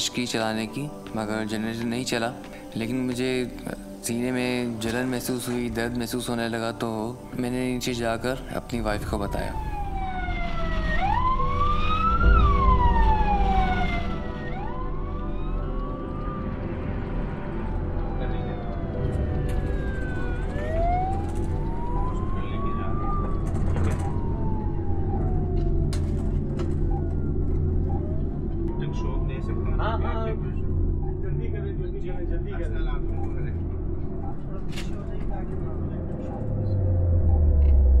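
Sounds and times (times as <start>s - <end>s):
ambulance siren wailing: 7.8s - 31.2s, 32.9s - 38.0s
low vehicle rumble: 8.8s - 38.0s.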